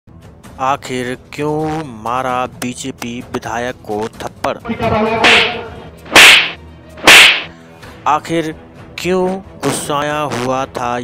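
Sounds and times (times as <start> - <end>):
whip-like swish effects: 4.7 - 7.5.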